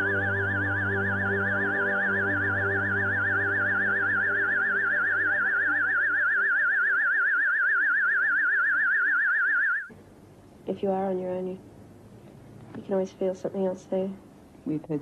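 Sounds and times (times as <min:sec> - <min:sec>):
eerie synthesizer music: 0:00.0 - 0:09.9.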